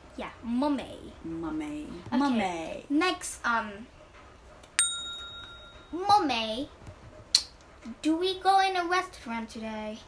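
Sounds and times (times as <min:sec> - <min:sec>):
bell-like ding: 0:04.8 - 0:06.0.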